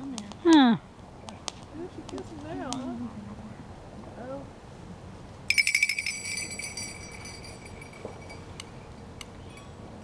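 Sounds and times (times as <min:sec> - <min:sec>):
high metallic ringing: 0:05.5 - 0:09.8.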